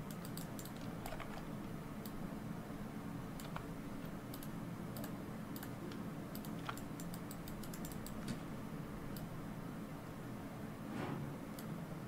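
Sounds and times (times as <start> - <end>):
keyboard and mouse clicks: 0.0 - 2.2, 3.4 - 8.4
steady low hum: 0.0 - 12.0.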